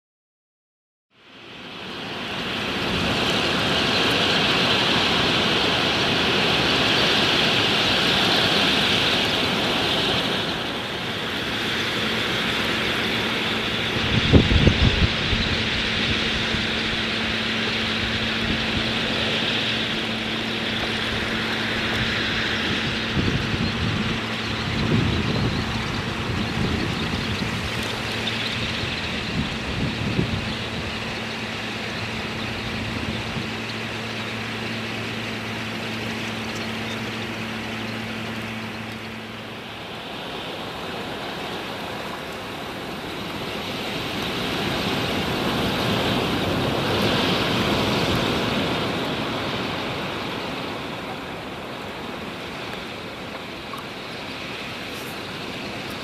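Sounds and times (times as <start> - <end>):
flock of birds wings rushing: 1.9 - 56.0
wind bumping microphone: 2.7 - 39.9.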